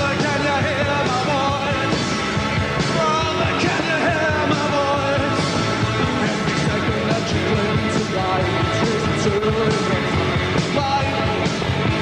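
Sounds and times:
male lead vocal: 0:00.0 - 0:12.0
rock band playing live: 0:00.0 - 0:12.0.

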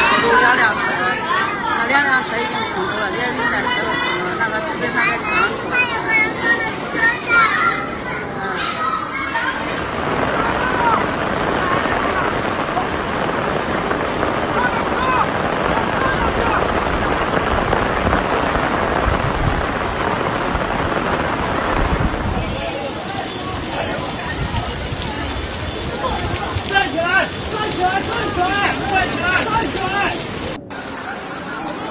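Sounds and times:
faint voices: 0:00.0 - 0:19.2, 0:21.4 - 0:31.9
floodwater rushing: 0:00.0 - 0:31.9.

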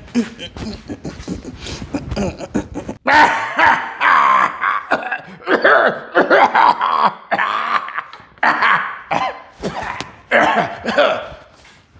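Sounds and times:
man laughing: 0:00.0 - 0:11.4
man coughing and clearing throat: 0:00.0 - 0:11.6.

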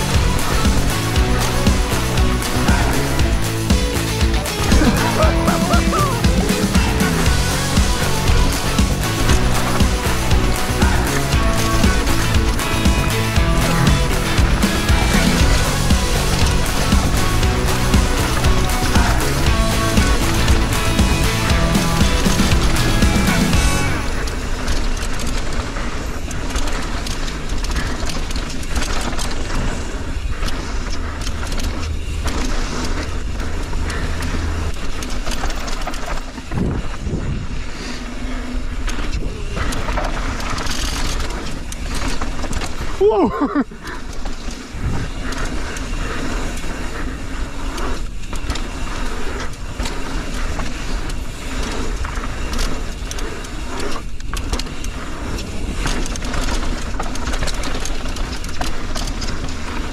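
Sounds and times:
background music with steady beat: 0:00.0 - 0:24.2
bike knocks and rattles: 0:00.0 - 0:59.9
bike tyres rolling on gravel: 0:00.0 - 0:59.9.

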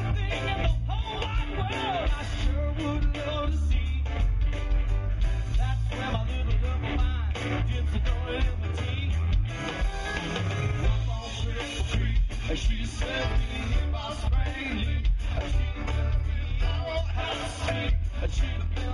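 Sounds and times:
live band playing: 0:00.0 - 0:18.9.

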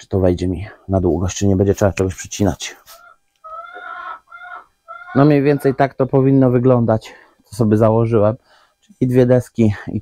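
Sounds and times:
bird calling: 0:02.9 - 0:06.2.

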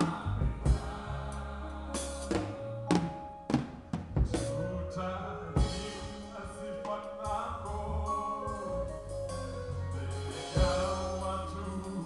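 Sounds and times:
band holding ringing notes: 0:07.7 - 0:12.0.

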